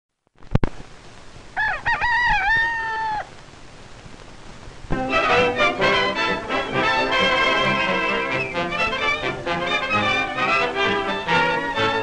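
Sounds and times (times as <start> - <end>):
film soundtrack hiss: 0.1 - 12.0
rooster crowing: 1.6 - 3.4.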